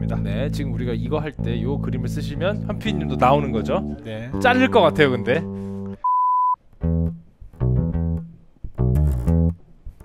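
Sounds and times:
electric bass plucked notes: 0:00.0 - 0:06.0, 0:06.7 - 0:10.0.

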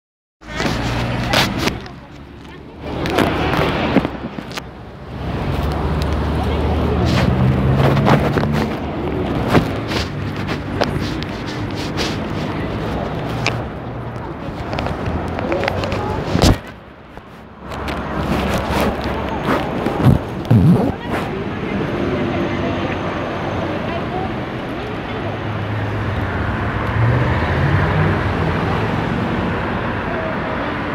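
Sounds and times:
phone microphone handling scrapes: 0:00.4 - 0:02.3, 0:07.0 - 0:21.3
street traffic: 0:00.4 - 0:30.9.

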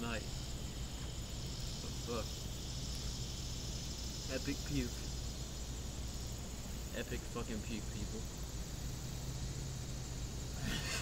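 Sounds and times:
steady low rumble: 0:00.0 - 0:11.0
man's breathy laugh: 0:10.6 - 0:11.0.

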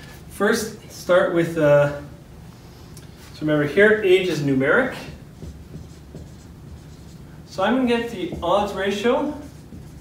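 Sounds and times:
marker writing on whiteboard: 0:04.2 - 0:10.0.

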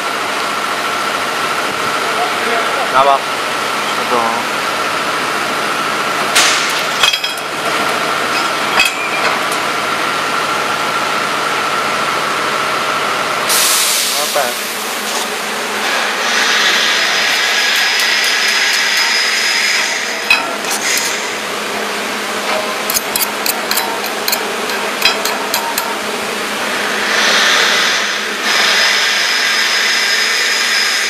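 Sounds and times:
plasma cutter hiss and whine: 0:13.5 - 0:15.2, 0:15.8 - 0:21.5, 0:27.0 - 0:31.0.

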